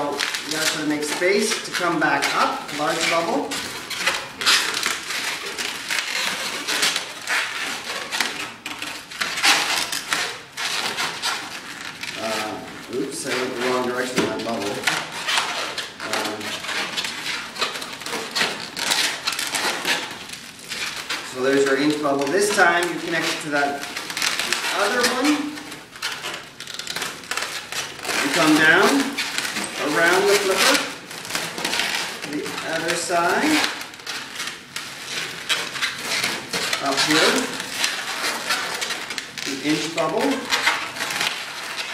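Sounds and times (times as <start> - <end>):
balloons rubbing and squeaking: 0.0 - 41.9.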